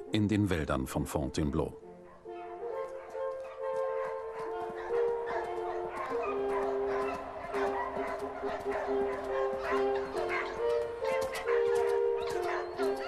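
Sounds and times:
music of long held notes: 0:01.8 - 0:13.0
hounds barking and yelping: 0:02.0 - 0:13.0.

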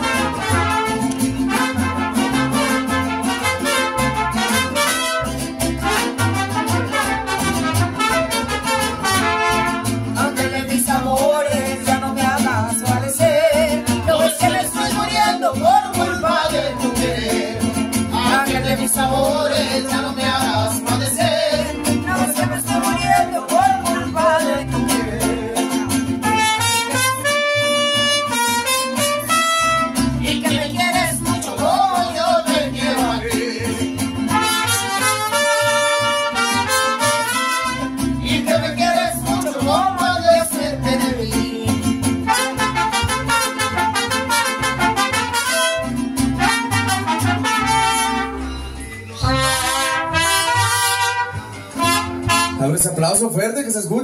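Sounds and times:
trumpets: 0:00.0 - 0:10.2, 0:26.2 - 0:30.1, 0:34.3 - 0:38.1, 0:42.2 - 0:48.6, 0:49.2 - 0:52.8
strummed guitars: 0:00.0 - 0:53.6
person singing: 0:10.1 - 0:26.3, 0:30.1 - 0:34.5, 0:37.7 - 0:44.5.

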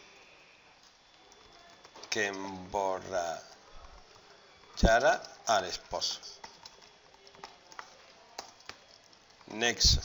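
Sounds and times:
keyboard typing: 0:00.0 - 0:10.0.

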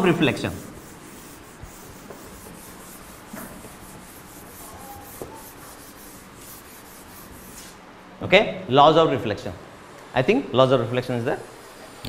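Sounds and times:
duster scrubbing chalkboard: 0:00.0 - 0:07.8.

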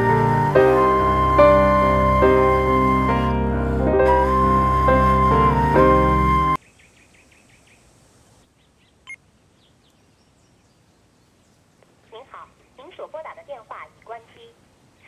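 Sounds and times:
piano music: 0:00.0 - 0:06.6.

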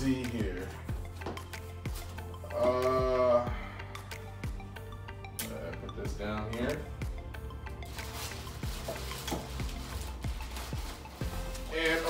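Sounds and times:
background music with low bass: 0:00.0 - 0:12.0
plastic wrapping crinkling: 0:07.8 - 0:12.0.

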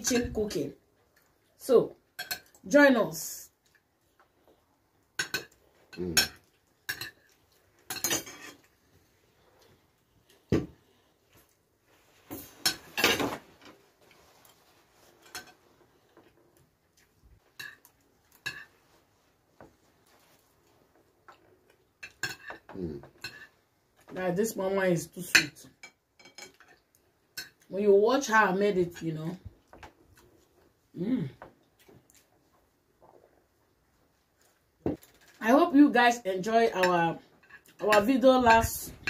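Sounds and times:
cutlery scraping on plates: 0:05.2 - 0:07.3, 0:07.9 - 0:08.7, 0:12.3 - 0:15.6, 0:17.5 - 0:18.8, 0:22.0 - 0:23.6, 0:25.8 - 0:26.8
forks clinking on ceramic plates: 0:07.9 - 0:08.6, 0:22.0 - 0:22.6
person humming: 0:31.0 - 0:31.4.

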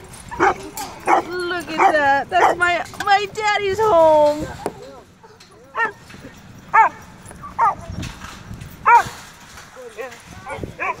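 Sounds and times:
dog yipping and whining: 0:06.7 - 0:08.0, 0:08.8 - 0:09.1.

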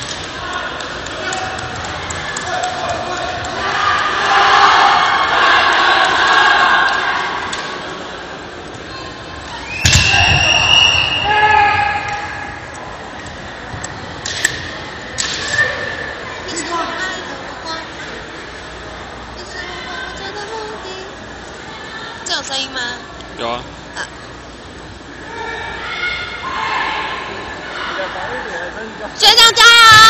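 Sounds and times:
bamboo swords clacking: 0:14.2 - 0:15.8.

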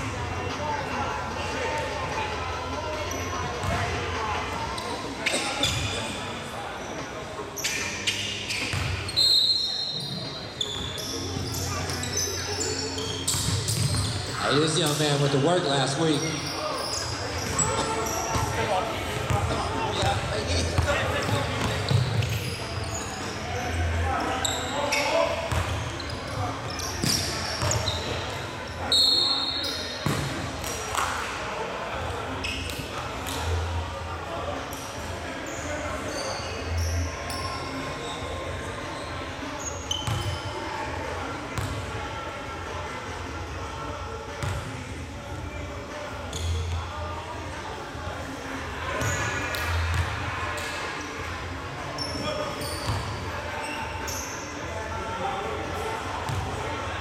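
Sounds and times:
players' voices echoing: 0:00.0 - 0:57.0
sneaker squeaks: 0:02.9 - 0:04.0, 0:04.7 - 0:31.2, 0:32.3 - 0:33.6, 0:34.7 - 0:40.7, 0:41.6 - 0:41.8, 0:44.4 - 0:44.7, 0:46.2 - 0:47.2, 0:48.9 - 0:51.2, 0:51.8 - 0:54.8, 0:55.7 - 0:56.5
whistle blast: 0:09.2 - 0:10.0, 0:28.9 - 0:29.8.

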